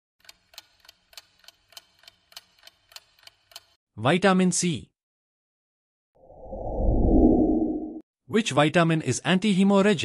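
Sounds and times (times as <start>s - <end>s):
clock ticking: 0.2s - 3.8s.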